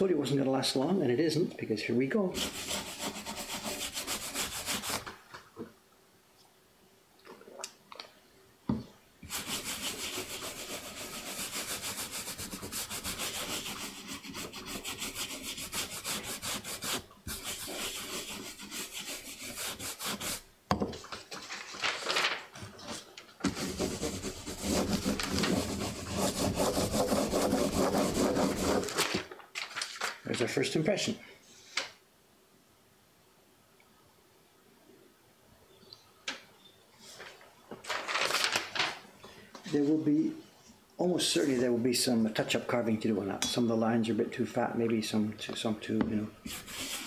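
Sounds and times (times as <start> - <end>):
brush scrubbing wooden block: 2.4 - 5.0, 9.3 - 20.5, 23.5 - 29.0, 46.4 - 47.0
baren rubbing paper: 2.4 - 5.1, 9.2 - 20.5, 23.4 - 29.2, 46.4 - 47.0.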